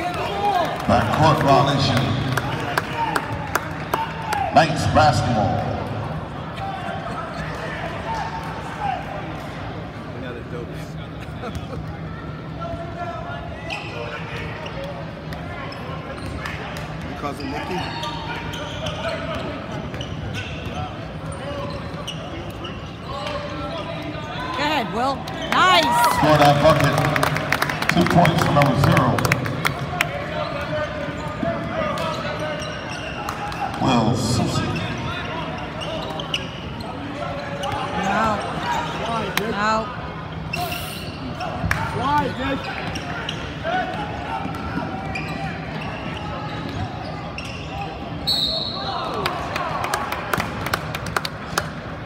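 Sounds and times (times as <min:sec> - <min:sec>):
murmur of voices: 0:00.0 - 0:52.0.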